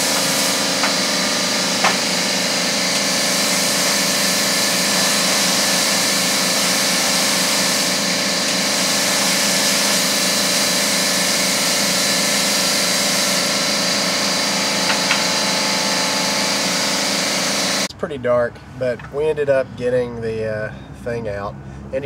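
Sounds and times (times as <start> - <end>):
machinery hum with high whine: 0.0 - 17.9.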